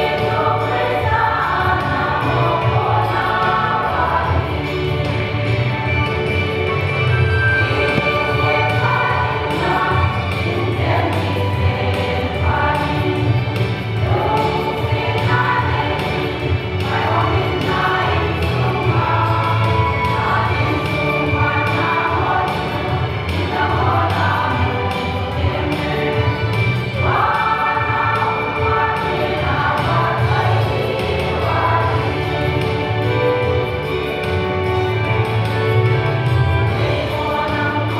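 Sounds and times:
women's choir singing: 0.0s - 37.9s.

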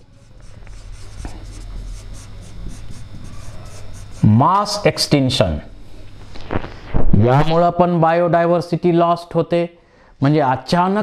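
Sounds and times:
marker writing on whiteboard: 0.0s - 4.3s.

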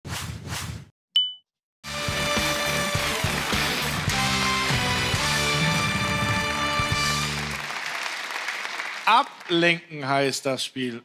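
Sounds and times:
quick whooshes: 0.1s - 0.9s
bright ding: 1.2s - 1.4s
upbeat jingle music: 2.0s - 7.6s.

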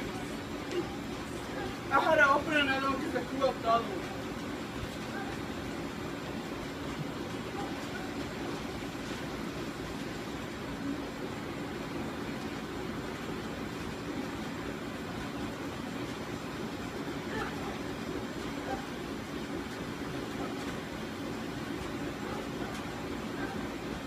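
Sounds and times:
room noise hum: 0.0s - 24.0s.

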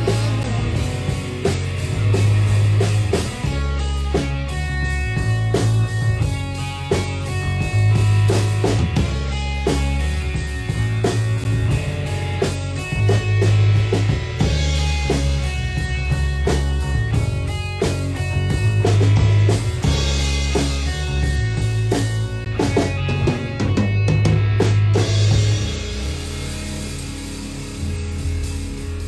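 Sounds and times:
drum hits: 0.0s - 29.0s
heavy bass notes: 0.0s - 29.0s
rock band playing: 0.0s - 29.0s.

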